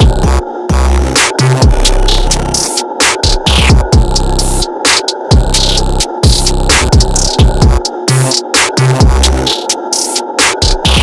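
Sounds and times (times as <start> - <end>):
distorted bass hits: 0.0 - 4.7, 5.3 - 9.5
hi-hats: 0.0 - 11.0
snare or clap strikes: 2.6 - 3.8, 8.6 - 9.0, 10.4 - 11.0.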